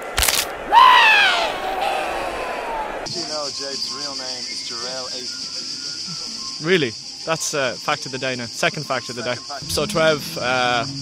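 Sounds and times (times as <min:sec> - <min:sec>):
cartoon descending cry: 0:00.7 - 0:03.1.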